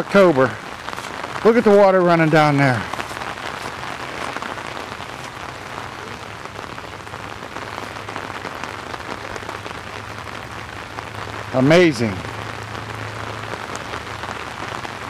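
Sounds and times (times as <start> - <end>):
steady rain falling: 0.0 - 15.0.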